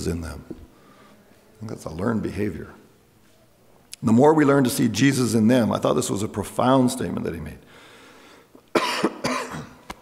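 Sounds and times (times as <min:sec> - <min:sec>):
man coughing: 0:08.7 - 0:09.8.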